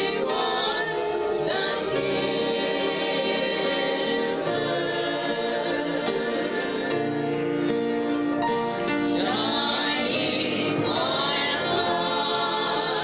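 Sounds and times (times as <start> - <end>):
gospel group singing: 0.0 - 7.9, 8.6 - 13.0.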